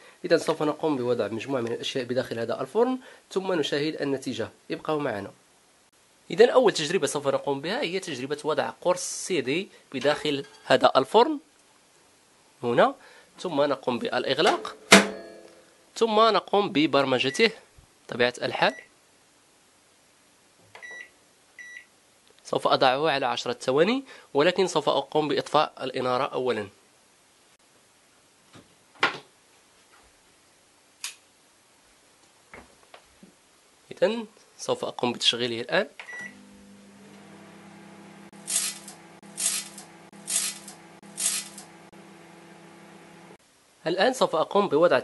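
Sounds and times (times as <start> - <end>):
microwave button beep: 20.8 - 21.9, 36.1 - 36.4
microwave oven hum: 36.1 - 43.4
electrical arcing crackles: 38.3 - 41.9.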